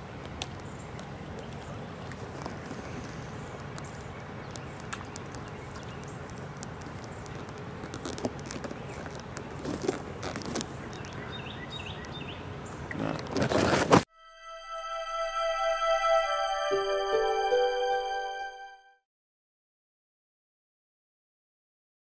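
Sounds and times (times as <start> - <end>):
outdoor background noise: 0.0 - 14.1.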